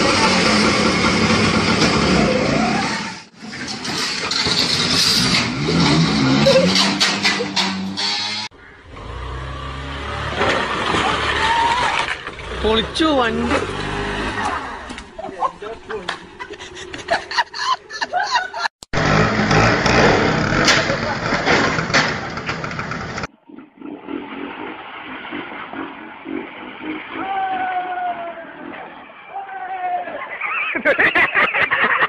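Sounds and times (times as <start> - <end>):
vehicle noise: 0.0 - 32.0.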